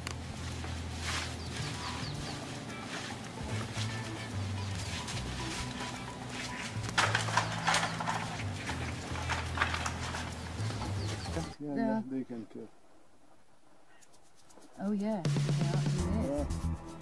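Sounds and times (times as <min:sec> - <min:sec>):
music with stepping bass line: 0:00.5 - 0:06.9, 0:14.8 - 0:17.0.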